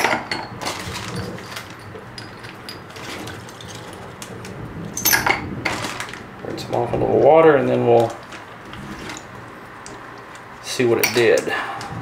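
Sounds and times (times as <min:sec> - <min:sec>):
steady low hum: 0:00.0 - 0:12.0
plastic bag crinkling: 0:00.3 - 0:10.8.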